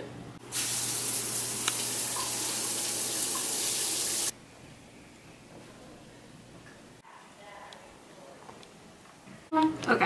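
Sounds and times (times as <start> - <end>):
shower water spraying: 0.4 - 4.3.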